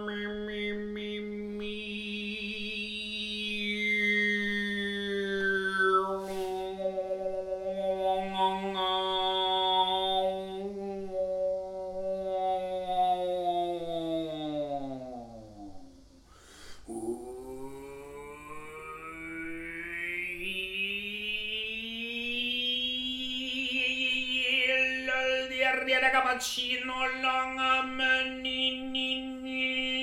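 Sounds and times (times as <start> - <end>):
man overtone singing: 0.0 - 15.6, 16.9 - 30.0
quick breath: 16.3 - 16.9.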